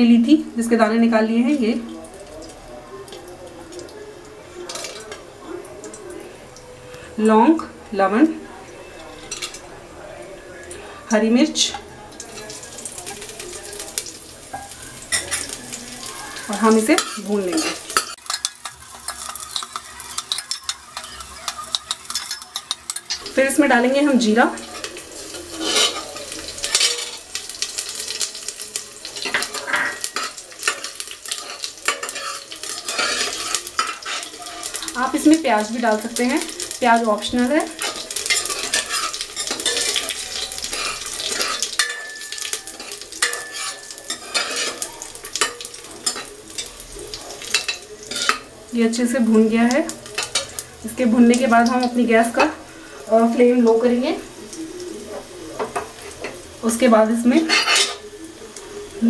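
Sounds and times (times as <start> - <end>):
spices sizzling in hot oil: 0.0 - 59.0
metal ladle scraping pot: 16.4 - 27.4, 29.2 - 35.3, 37.7 - 46.7, 47.4 - 48.5.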